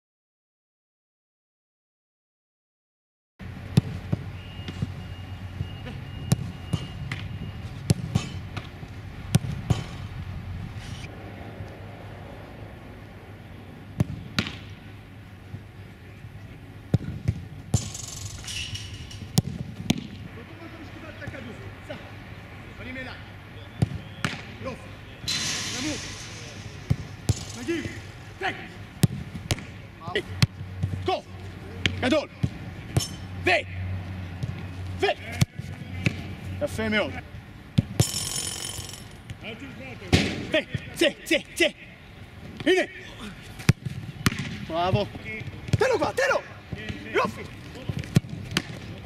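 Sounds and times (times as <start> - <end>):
outdoor background noise: 3.4 - 49.0
football being struck: 7.8 - 8.7, 14.0 - 14.8, 16.9 - 18.5, 19.2 - 20.2, 23.8 - 24.5, 25.3 - 28.1, 29.0 - 29.8, 37.8 - 39.0, 40.1 - 40.5, 43.6 - 44.6.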